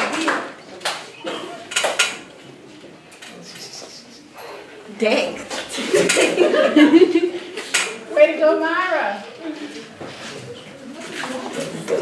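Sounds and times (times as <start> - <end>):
faint scattered sounds: 0.0 - 12.0.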